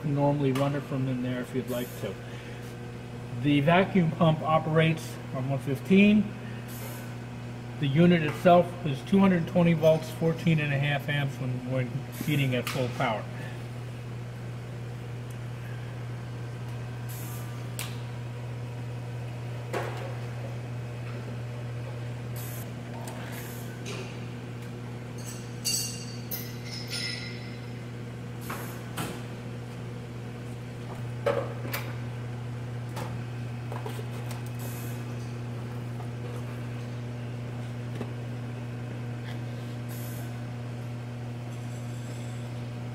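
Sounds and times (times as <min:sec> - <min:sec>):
electrical machine hum: 0:00.0 - 0:42.9.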